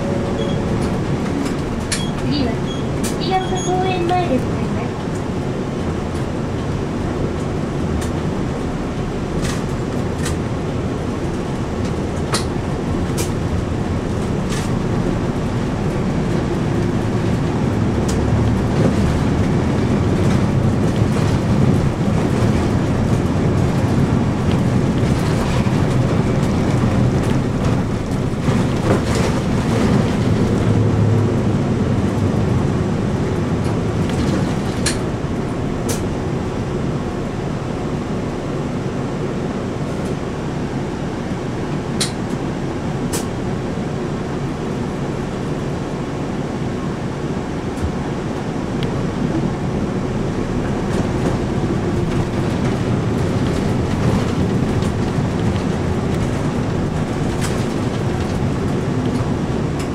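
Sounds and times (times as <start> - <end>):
bus engine drone: 0.0 - 59.9
road noise: 0.0 - 59.9.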